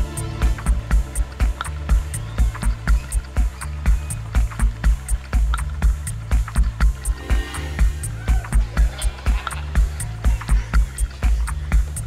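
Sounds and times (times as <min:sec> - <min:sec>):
kick drum: 0:00.0 - 0:07.1
bass notes: 0:00.0 - 0:12.0
hi-hat ticks: 0:00.4 - 0:07.2.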